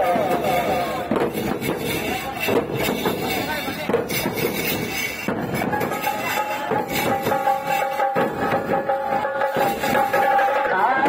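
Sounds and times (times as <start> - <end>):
procession drums beaten with sticks: 0.0 - 11.0.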